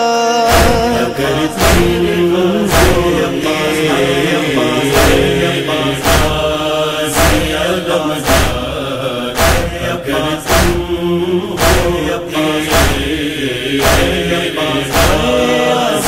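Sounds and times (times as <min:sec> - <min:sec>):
man chanting a lament: 0:00.0 - 0:16.0
heavy beat: 0:00.5 - 0:16.0
steady held tones: 0:00.5 - 0:16.0.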